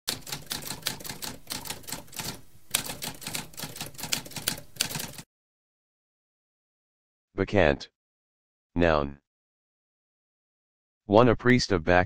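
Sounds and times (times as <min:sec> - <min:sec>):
manual typewriter key strikes: 0:00.1 - 0:05.2.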